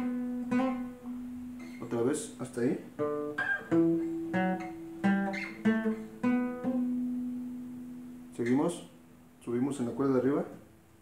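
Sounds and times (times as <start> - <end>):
acoustic guitar picked notes: 0.0 - 11.0.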